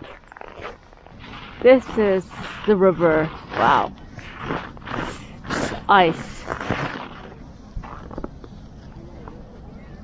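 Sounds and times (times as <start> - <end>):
boots crunching on snowy ice: 0.0 - 8.3.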